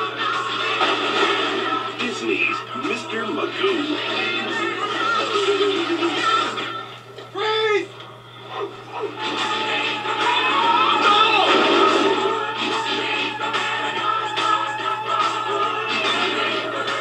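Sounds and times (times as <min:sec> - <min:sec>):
trailer music: 0:09.2 - 0:17.0.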